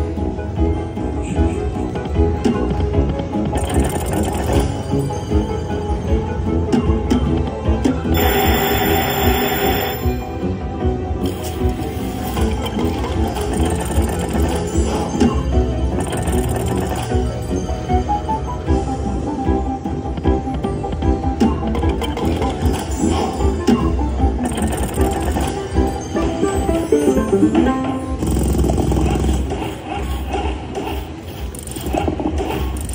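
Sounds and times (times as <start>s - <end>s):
electronic game music: 1.2s - 6.3s, 8.0s - 10.5s, 11.2s - 30.7s.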